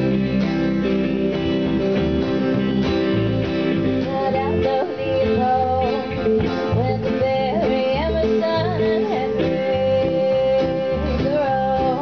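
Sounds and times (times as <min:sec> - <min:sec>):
guitars strumming: 0:00.0 - 0:12.0
sliding lead melody: 0:00.0 - 0:12.0.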